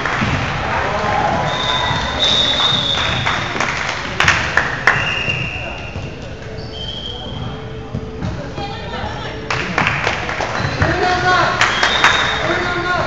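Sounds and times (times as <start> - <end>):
hubbub of voices: 0.0 - 13.0.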